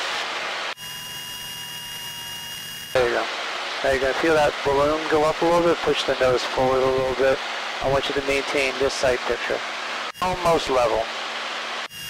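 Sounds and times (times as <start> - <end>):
aircraft engine hum: 0.0 - 12.0
high-pitched electrical whine: 0.0 - 12.0.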